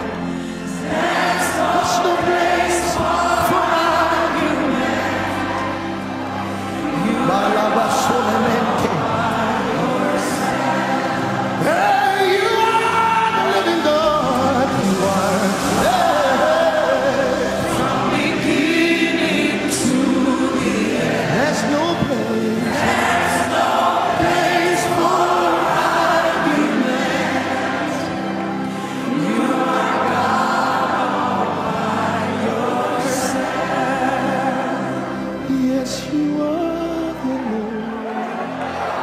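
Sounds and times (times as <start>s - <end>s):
choir and congregation singing: 0.0s - 39.0s
lead vocalist singing: 0.0s - 39.0s.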